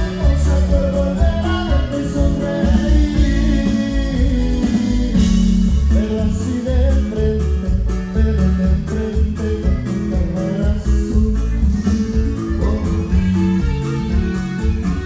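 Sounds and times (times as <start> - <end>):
person singing: 0.0 - 14.2
drum kit beat: 0.0 - 15.0
electric bass: 0.0 - 15.0
twelve-string guitar: 0.0 - 15.0.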